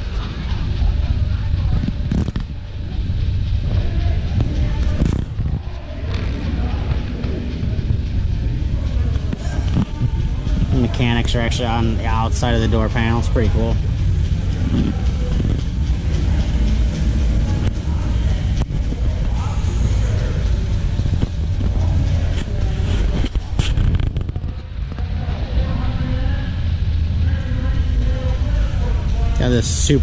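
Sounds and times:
distant crowd chatter: 0:00.0 - 0:30.0
low rumble: 0:00.0 - 0:30.0.

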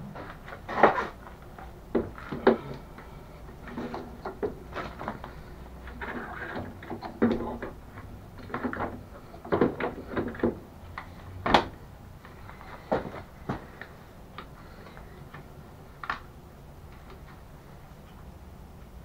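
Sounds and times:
heavy batteries knocking and clunking: 0:01.9 - 0:10.7.

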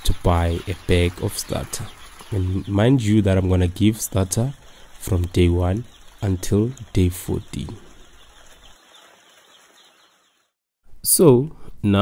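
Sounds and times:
chicks peeping: 0:00.0 - 0:10.5.

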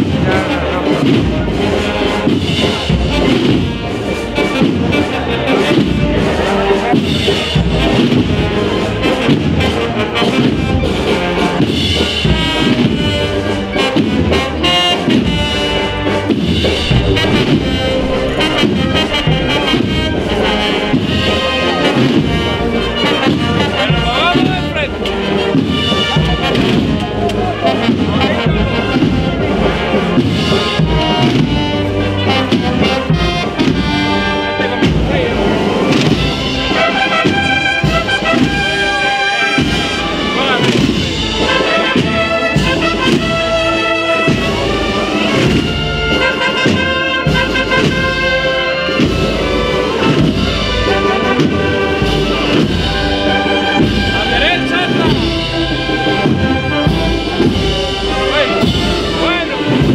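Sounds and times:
wind band playing a march: 0:00.0 - 0:59.9.

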